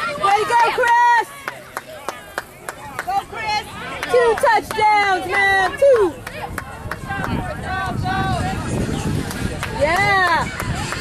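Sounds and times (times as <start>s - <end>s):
faint voices of spectators: 0.0s - 11.0s.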